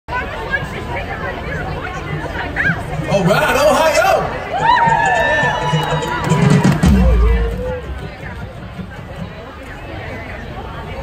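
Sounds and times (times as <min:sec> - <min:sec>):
crowd chatter: 0:00.1 - 0:11.0.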